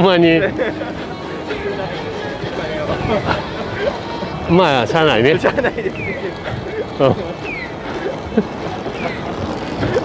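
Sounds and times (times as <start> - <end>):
passing traffic: 0.0 - 10.0
pedestrian crossing chirp: 0.0 - 10.0.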